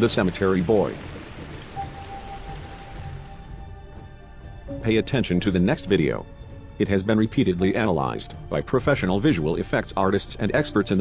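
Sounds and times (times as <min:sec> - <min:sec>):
steady rain hiss: 0:00.0 - 0:03.7.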